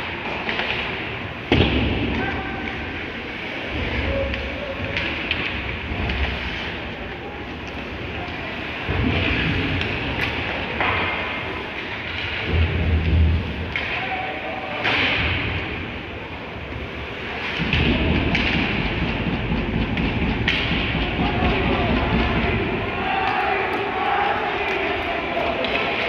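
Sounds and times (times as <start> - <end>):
skates and sticks on ice: 0.0 - 26.0
players shouting: 13.7 - 15.3, 20.0 - 26.0.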